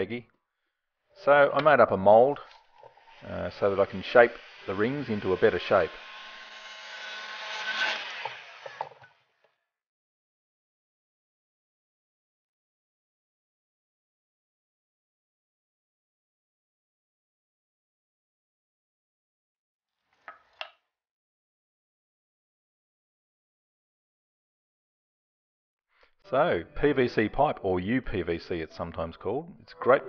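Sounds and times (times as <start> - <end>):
heat gun blowing air: 3.1 - 8.9.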